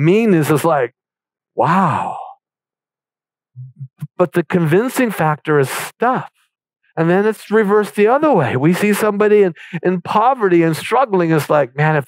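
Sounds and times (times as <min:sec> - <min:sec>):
man speaking: 0:00.0 - 0:00.9, 0:01.6 - 0:02.3, 0:03.6 - 0:06.3, 0:07.0 - 0:12.0
man exclaiming wow: 0:01.6 - 0:02.3
short low voice sounds: 0:01.6 - 0:02.3, 0:03.6 - 0:04.4.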